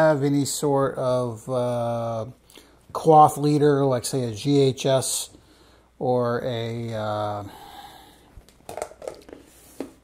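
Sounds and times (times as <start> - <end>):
hands handling things on table: 8.4 - 10.0.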